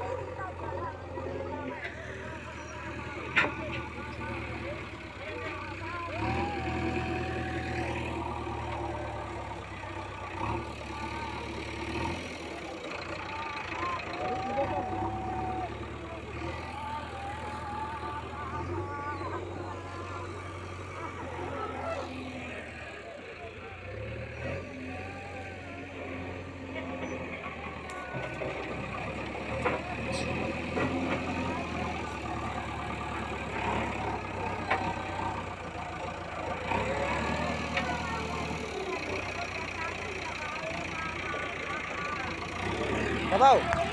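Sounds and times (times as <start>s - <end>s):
diesel engine revving: 0.0s - 43.9s.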